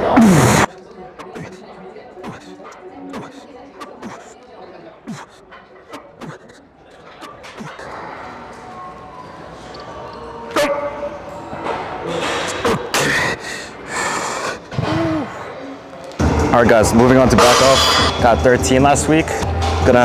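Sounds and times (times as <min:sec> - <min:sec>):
man grunting and straining: 0:00.0 - 0:01.6, 0:02.2 - 0:04.4, 0:05.0 - 0:08.0.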